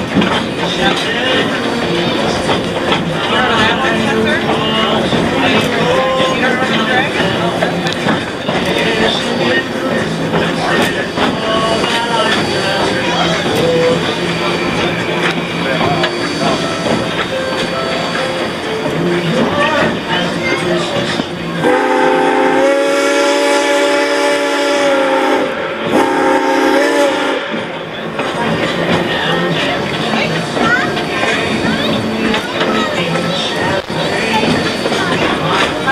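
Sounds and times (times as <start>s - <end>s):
train wheels rattling on track: 0.0s - 35.9s
steam locomotive whistle: 21.6s - 27.6s.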